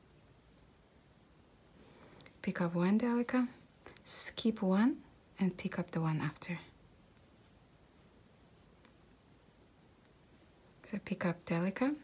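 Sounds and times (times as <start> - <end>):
thread scratching through beads: 8.2 - 10.2.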